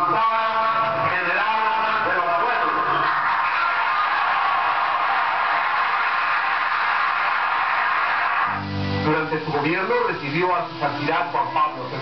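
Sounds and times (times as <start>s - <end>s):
large crowd applauding: 2.4s - 8.6s.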